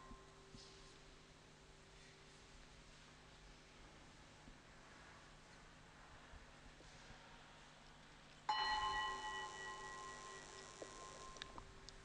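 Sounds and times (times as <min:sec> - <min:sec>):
altar bell ringing: 0:08.5 - 0:11.6.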